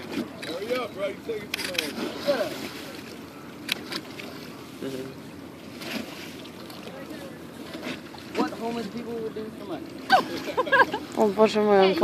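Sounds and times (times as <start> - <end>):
river water: 0.0 - 12.0
wind: 0.0 - 12.0.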